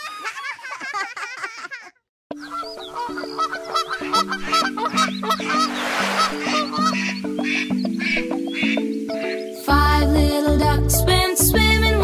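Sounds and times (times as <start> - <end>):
instrumental children's song: 2.3 - 12.0
short rush of noise: 5.5 - 6.8.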